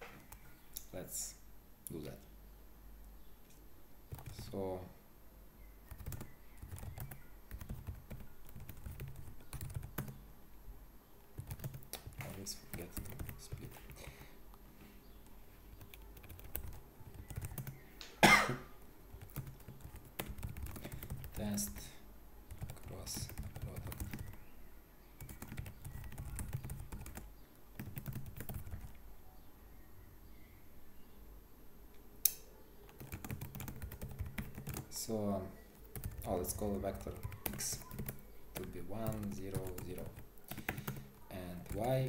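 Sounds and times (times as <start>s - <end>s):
computer keyboard typing: 4.1s - 4.5s, 5.9s - 10.2s, 11.4s - 14.3s, 15.2s - 17.8s, 19.1s - 21.9s, 22.5s - 24.4s, 25.2s - 29.0s, 32.8s - 35.0s, 35.8s - 42.0s.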